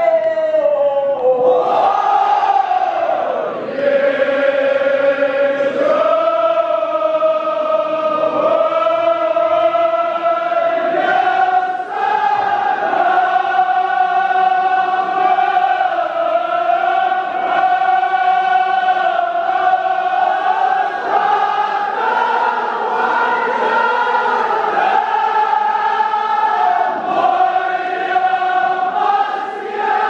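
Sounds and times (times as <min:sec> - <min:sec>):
men chanting together: 0:01.2 - 0:30.0.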